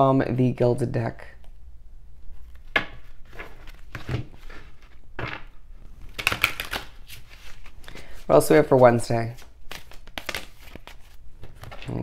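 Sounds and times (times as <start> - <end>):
cards being shuffled: 2.4 - 12.0.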